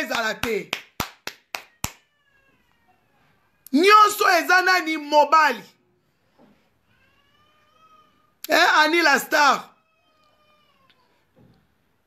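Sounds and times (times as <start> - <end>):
quick sharp hand claps: 0.0 - 2.0.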